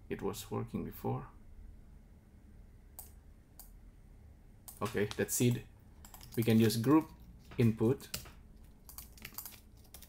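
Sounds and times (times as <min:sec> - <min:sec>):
computer mouse clicks: 0:03.0 - 0:03.8, 0:06.0 - 0:07.2.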